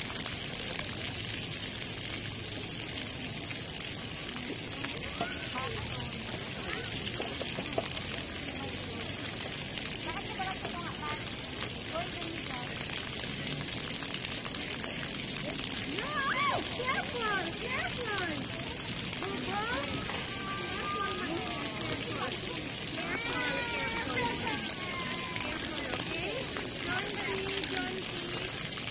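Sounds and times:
water jets spraying: 0:00.0 - 0:28.9
children shouting and calling: 0:04.8 - 0:07.9, 0:15.8 - 0:28.4.

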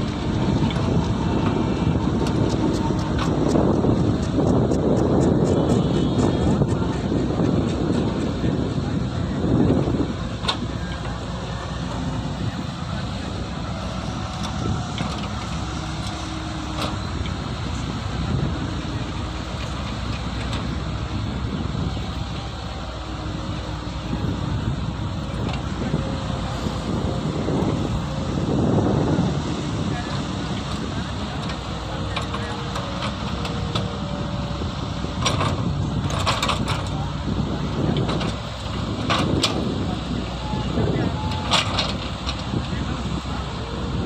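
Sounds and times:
diesel engine under load: 0:00.0 - 0:44.0
hydraulics working: 0:00.0 - 0:44.0.

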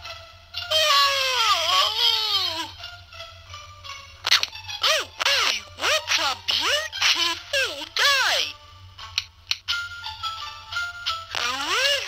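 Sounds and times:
cartoon voice short cries: 0:00.7 - 0:02.7, 0:04.8 - 0:08.5, 0:11.3 - 0:12.0
cartoon voice wailing: 0:00.7 - 0:02.7, 0:04.3 - 0:08.6, 0:11.3 - 0:12.0.

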